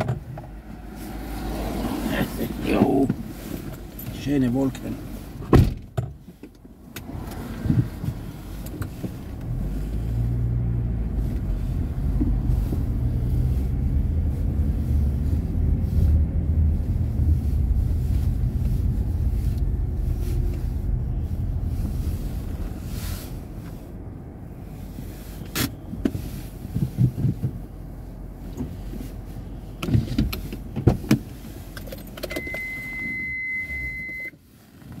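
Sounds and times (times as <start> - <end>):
vehicle engine rumbling: 0.0 - 35.0
high beep: 32.3 - 34.3.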